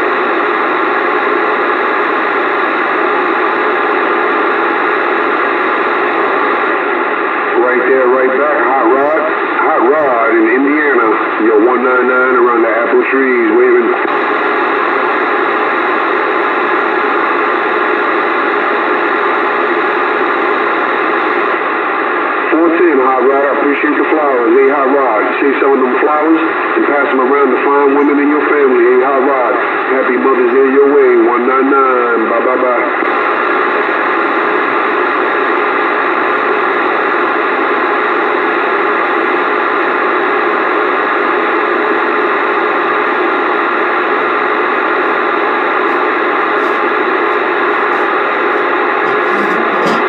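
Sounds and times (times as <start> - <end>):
radio static hiss: 0.0 - 50.0
weak voice over radio: 7.5 - 14.2, 22.5 - 33.3, 42.8 - 50.0.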